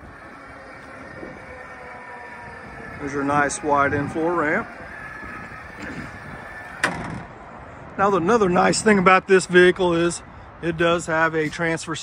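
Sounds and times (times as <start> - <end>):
wheelchair ramp motor whine: 0.0 - 7.4
ramp clunk: 5.3 - 7.3.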